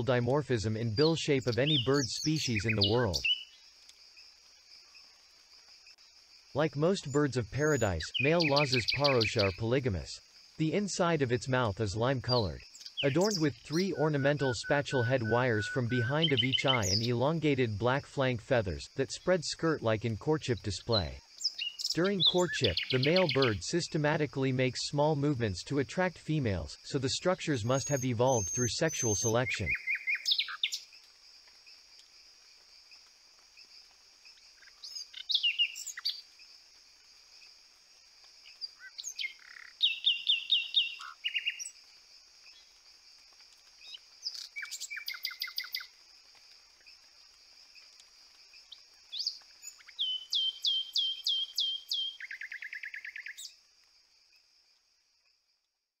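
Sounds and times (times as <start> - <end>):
bird calling sharp repeated notes: 12.3 - 17.2
high-pitched background drone: 13.0 - 17.0.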